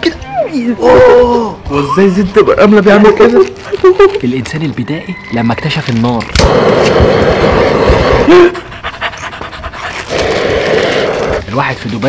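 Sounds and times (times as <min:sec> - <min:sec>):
gas torch hissing: 0:06.2 - 0:08.6, 0:10.0 - 0:11.5.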